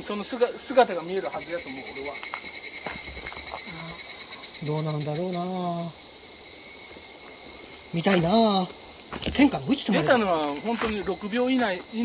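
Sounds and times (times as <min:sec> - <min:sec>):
cicadas shrilling: 0:00.0 - 0:12.0.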